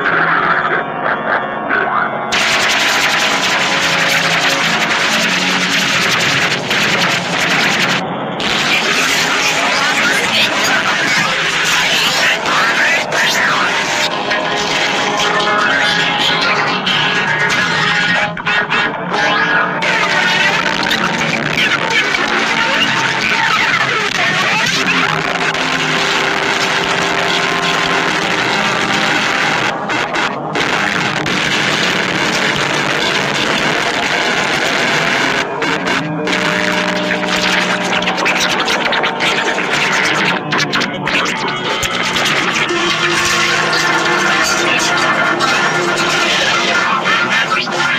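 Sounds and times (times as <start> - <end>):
many music tracks overlaid: 0.8 - 47.9.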